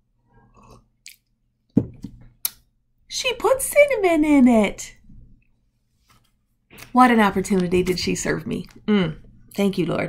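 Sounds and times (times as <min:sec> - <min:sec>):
person sipping and swallowing: 0:00.3 - 0:01.2
mug thumping on desk: 0:01.8 - 0:02.2.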